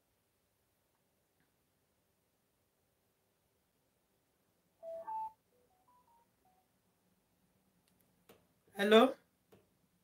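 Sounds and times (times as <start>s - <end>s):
phone two-note tone: 4.8s - 6.6s
short beeps at shifting pitches: 4.8s - 6.7s.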